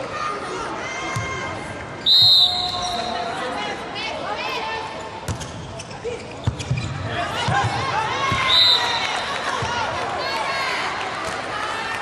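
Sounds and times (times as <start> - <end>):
crowd chatter: 0.0 - 12.0
referee's whistle: 2.0 - 3.2, 8.4 - 9.2
volleyball bouncing on court: 5.2 - 5.6, 6.4 - 8.5.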